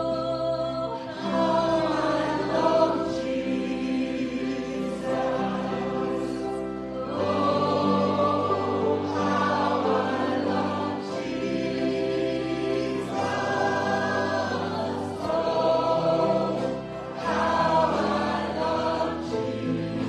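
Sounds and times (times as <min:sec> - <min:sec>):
church choir singing a hymn: 0:00.0 - 0:20.0.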